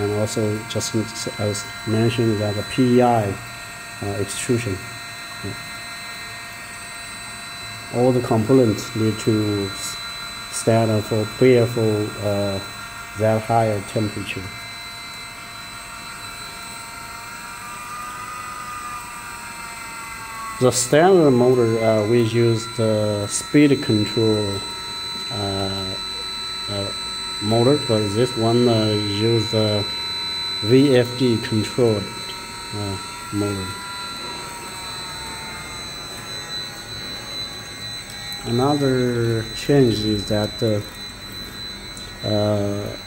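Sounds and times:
extruder motor hum and whine: 0.0 - 43.0.

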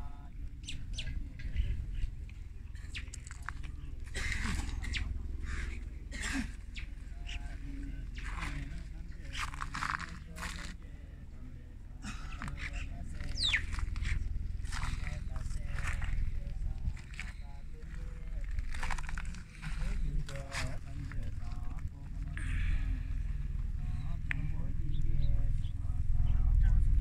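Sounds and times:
faint murmuring voices: 0.0 - 27.0
steady low rumble: 0.0 - 27.0
small bird chirping: 0.6 - 2.1, 12.6 - 14.2.

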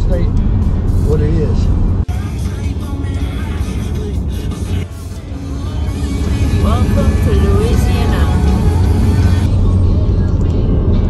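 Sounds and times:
background music: 0.0 - 11.0
car road noise inside cabin: 0.0 - 11.0.

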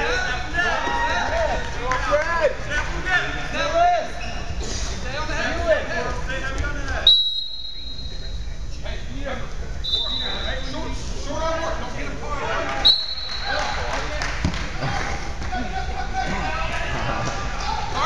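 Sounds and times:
voices in a gym: 0.0 - 18.0
referee's whistle blasts: 7.0 - 8.2, 9.8 - 10.8, 12.8 - 13.6.

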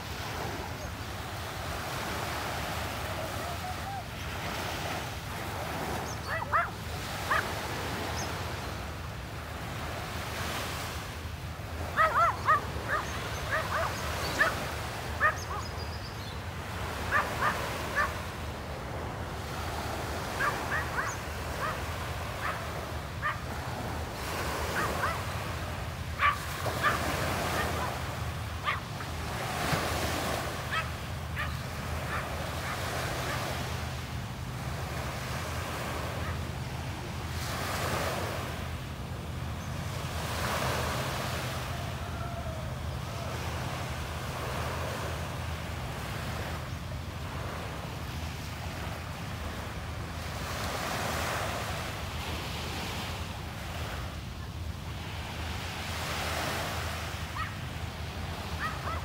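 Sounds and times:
small waves washing onto beach: 0.0 - 59.0
dog barking: 6.2 - 7.6, 11.9 - 15.7, 17.0 - 18.2, 20.3 - 23.5, 24.7 - 25.3, 26.2 - 29.1, 30.7 - 33.5, 57.3 - 57.6, 58.6 - 59.0.

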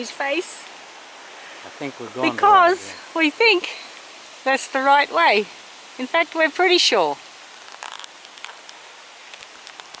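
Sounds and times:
bicycle tyres rolling on dirt: 7.4 - 10.0.

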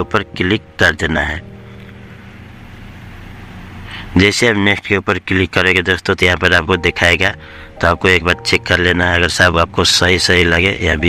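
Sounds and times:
faint low steady tones: 0.0 - 4.2
background hum and hiss: 0.0 - 11.0.

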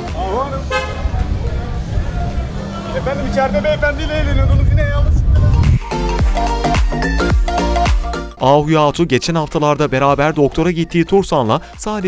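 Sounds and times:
street traffic rumble: 0.0 - 6.7
car horn toot: 0.7 - 1.1.

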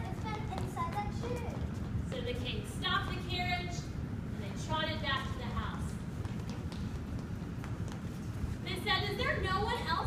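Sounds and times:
children's footsteps on tiled floor: 0.0 - 3.3, 5.5 - 9.7
low room rumble: 0.0 - 10.0.

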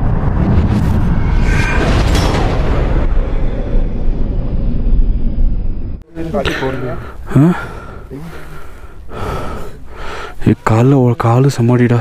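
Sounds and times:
man breathing hard and gasping: 6.4 - 10.4.

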